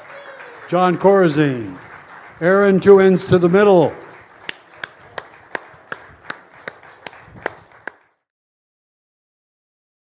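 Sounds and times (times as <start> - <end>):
audience clapping: 0.0 - 8.3.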